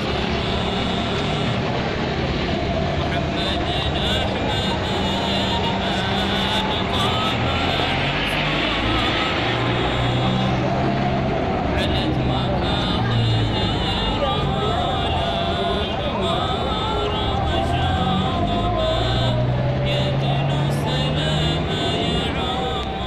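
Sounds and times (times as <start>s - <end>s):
people's voices: 0.0s - 23.0s
vehicle rumble: 0.0s - 23.0s.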